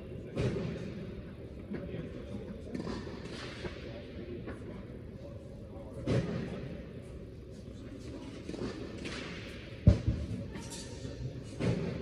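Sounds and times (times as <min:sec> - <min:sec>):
dull thumps in large hall: 0:00.0 - 0:05.0, 0:05.7 - 0:12.0.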